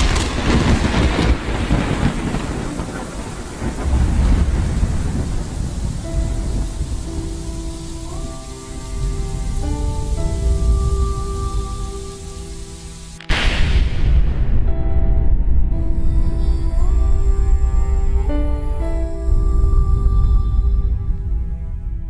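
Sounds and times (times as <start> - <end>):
rain hiss: 0.0 - 14.6
thunder rolling: 0.0 - 21.8
soft sustained music notes: 0.0 - 22.0.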